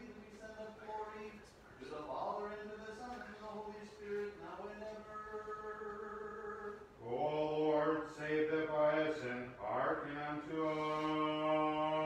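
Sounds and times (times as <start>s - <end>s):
man chanting on long tones: 0.0s - 12.0s.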